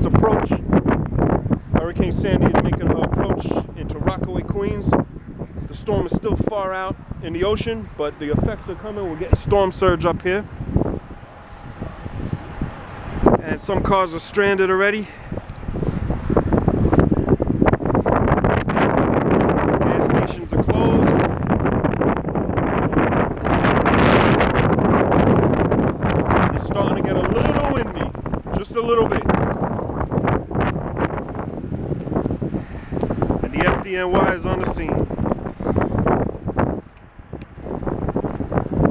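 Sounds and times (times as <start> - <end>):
storm wind buffeting microphone: 0.0 - 38.9.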